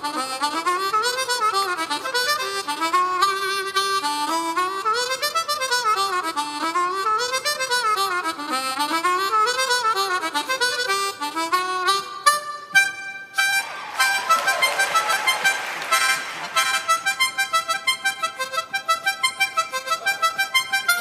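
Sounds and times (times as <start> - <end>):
harmonica runs: 0.0 - 21.0.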